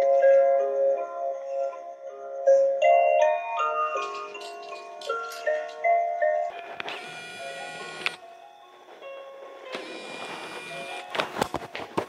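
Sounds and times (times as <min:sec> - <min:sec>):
electronic lullaby chime melody: 0:00.0 - 0:04.4.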